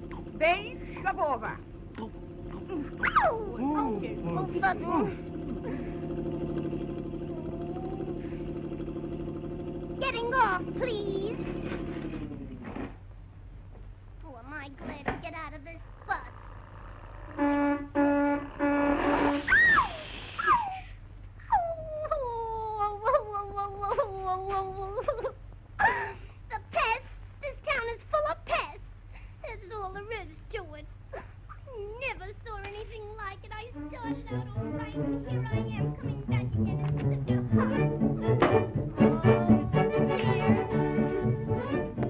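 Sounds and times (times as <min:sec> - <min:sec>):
vehicle motor throbbing: 0:00.0 - 0:14.0, 0:15.6 - 0:20.2, 0:32.7 - 0:42.0
low soundtrack hum: 0:00.0 - 0:14.3, 0:15.4 - 0:19.6, 0:32.6 - 0:42.0
wailing whimpering cries: 0:02.0 - 0:05.1, 0:07.2 - 0:08.2, 0:19.5 - 0:26.1.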